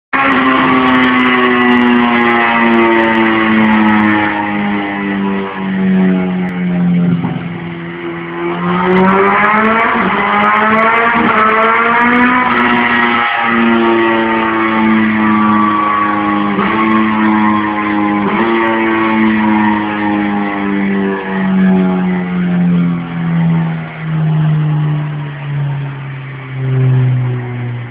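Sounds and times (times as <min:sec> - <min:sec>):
motorcycle engine at high revs: 0:00.2 - 0:23.5.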